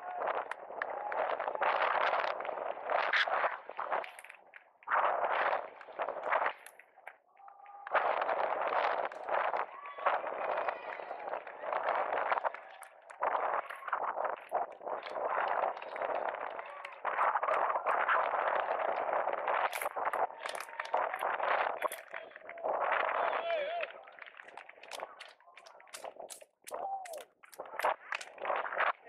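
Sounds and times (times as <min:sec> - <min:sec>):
voices: 0:07.3 - 0:29.0.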